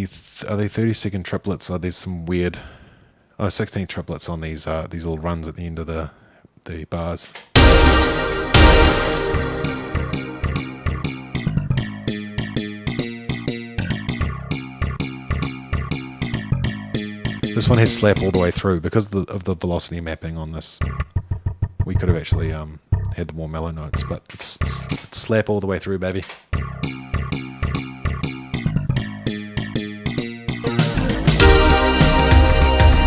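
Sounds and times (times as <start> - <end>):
slap bass line: 7.6 - 18.8, 20.8 - 23.2, 26.5 - 33.0.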